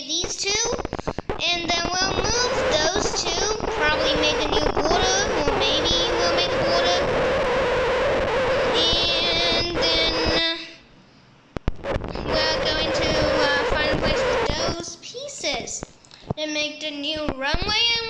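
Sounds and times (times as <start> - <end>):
child singing a wordless tune: 0.0 - 7.1, 8.6 - 10.8, 12.2 - 18.0.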